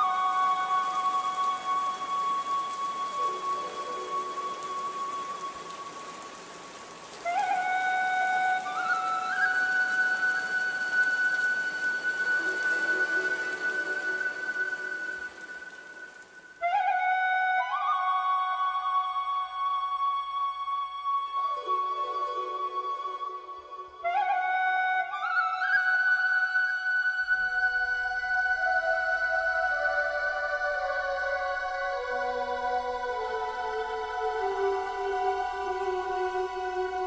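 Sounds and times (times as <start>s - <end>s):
slow flute-like melody: 0.0s - 37.0s
steady hiss: 0.0s - 37.0s.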